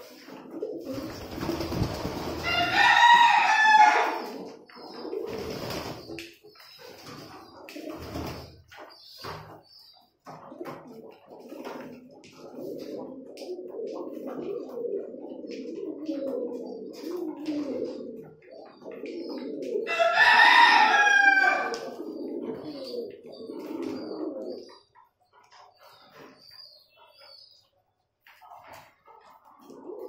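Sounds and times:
pigeons cooing: 0:00.0 - 0:30.0
rooster crowing: 0:02.4 - 0:04.2, 0:19.9 - 0:21.8.

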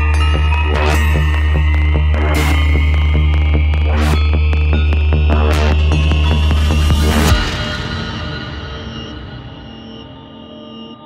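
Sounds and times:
heavy bassline: 0:00.0 - 0:10.6
high synth tone: 0:03.7 - 0:11.0.

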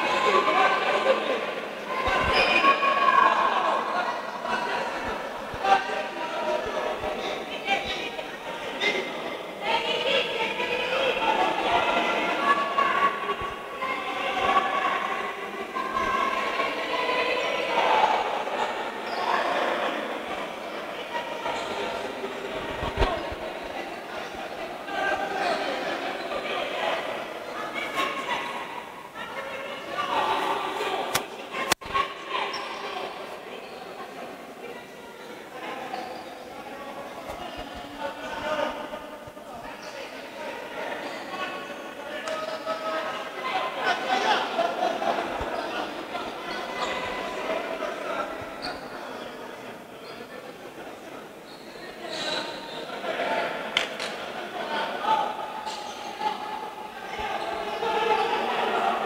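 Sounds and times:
indistinct voices echoing in gym: 0:00.0 - 0:59.0.

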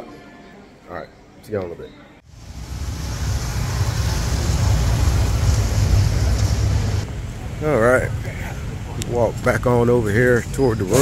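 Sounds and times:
vehicle engine and road rumble: 0:02.3 - 0:11.0.

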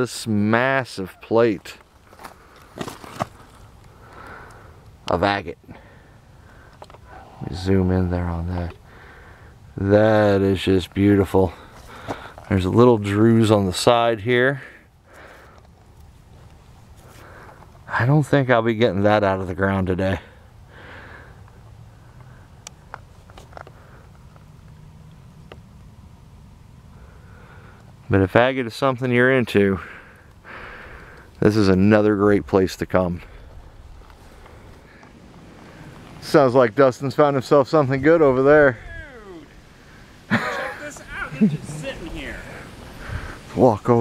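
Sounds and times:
person speaking: 0:36.2 - 0:39.6, 0:40.3 - 0:44.0
breath drawn in: 0:42.4 - 0:43.6.

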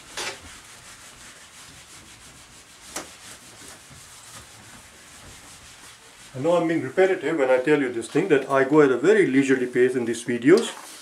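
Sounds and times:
eraser rubbing on whiteboard: 0:00.0 - 0:06.6.

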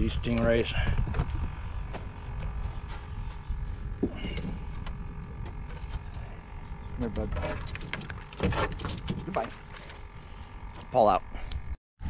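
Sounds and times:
wind rumble on microphone: 0:00.0 - 0:09.7.

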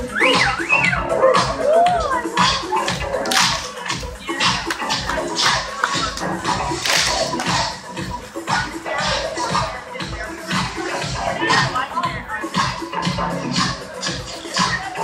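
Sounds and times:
electronic dance music: 0:00.0 - 0:15.0
street crowd voices: 0:00.0 - 0:15.0.

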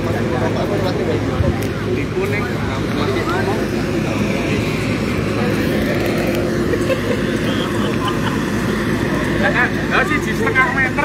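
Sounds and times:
low motor drone: 0:00.0 - 0:11.0
people talking indistinctly: 0:00.0 - 0:11.0.

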